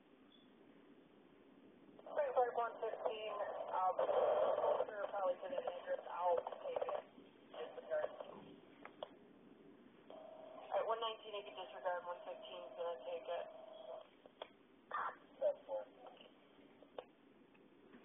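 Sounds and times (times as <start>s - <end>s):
radio dispatch voice: 2.0s - 7.0s, 7.6s - 8.3s, 10.6s - 14.0s.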